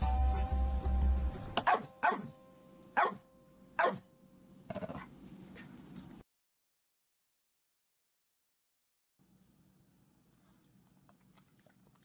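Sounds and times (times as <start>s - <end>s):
dog barking: 1.6s - 2.3s, 3.0s - 3.2s, 3.8s - 4.1s.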